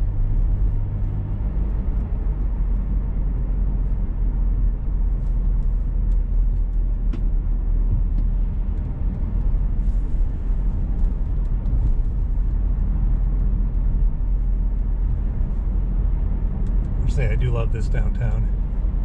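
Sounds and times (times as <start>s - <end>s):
car road and engine rumble: 0.0s - 19.0s.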